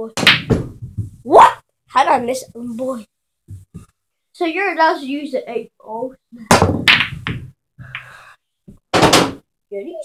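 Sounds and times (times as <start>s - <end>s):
pool balls clicking: 6.7s - 8.0s.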